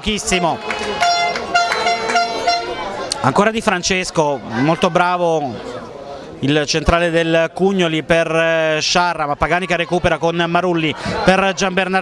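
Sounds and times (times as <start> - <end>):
horn short toots: 0.3 - 2.9.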